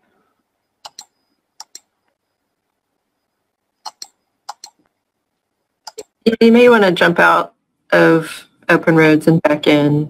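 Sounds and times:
computer mouse clicking: 0:00.8 - 0:01.9, 0:03.8 - 0:04.9, 0:05.9 - 0:06.1.

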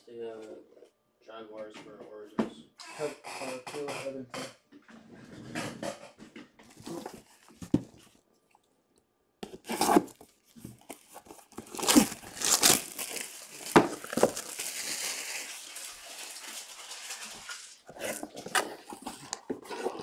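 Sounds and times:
plastic packaging crinkling: 0:06.7 - 0:08.1, 0:09.4 - 0:20.0.

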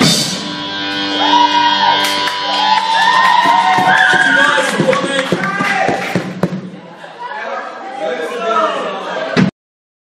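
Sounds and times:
indistinct chatter of people: 0:06.6 - 0:09.5.

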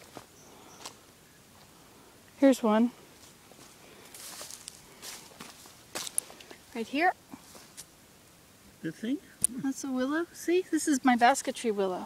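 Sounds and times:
footsteps through grass and twigs: 0:00.0 - 0:08.0.

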